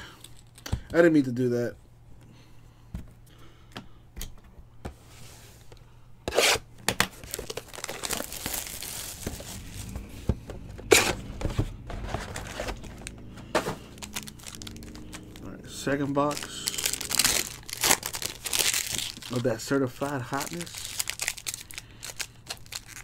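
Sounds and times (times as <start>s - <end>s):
wrapping crinkling: 7.1s - 10.1s, 13.8s - 23.0s
wrapping ripping: 7.2s - 10.0s, 13.9s - 15.5s, 16.2s - 23.0s.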